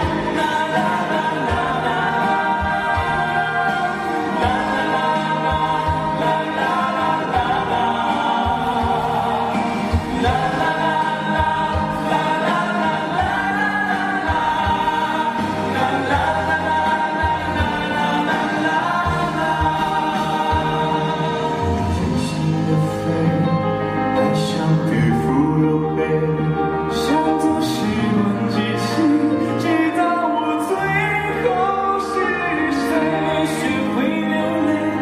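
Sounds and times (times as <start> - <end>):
male group singing in harmony: 0.0 - 35.0.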